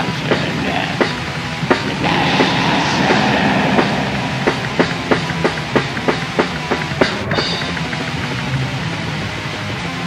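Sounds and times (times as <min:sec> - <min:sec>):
cymbal wash: 0:01.9 - 0:07.0
distorted guitar: 0:01.9 - 0:07.0
drum hits: 0:02.0 - 0:06.8.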